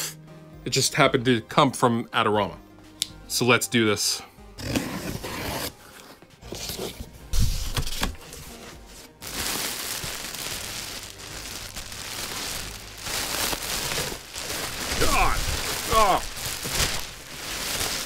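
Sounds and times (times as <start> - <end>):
plastic packing crinkling: 9.2 - 18.0
packing tape being torn: 9.3 - 18.0.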